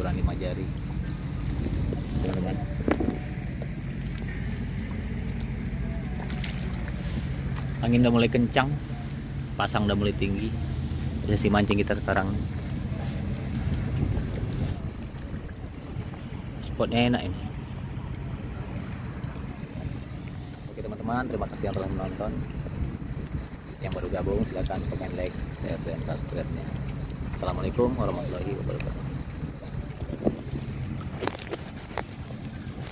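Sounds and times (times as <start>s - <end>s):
low steady rumble: 0.0s - 32.9s
wind buffeting microphone: 0.0s - 32.9s.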